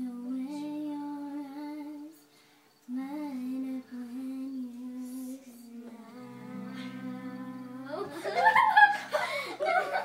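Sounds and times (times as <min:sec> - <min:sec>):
person singing: 0:02.8 - 0:08.2
girls laughing: 0:07.9 - 0:10.0.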